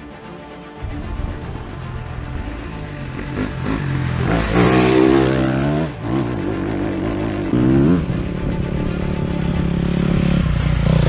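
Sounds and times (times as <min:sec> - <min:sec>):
dirt bike engine revving: 0:02.6 - 0:11.0.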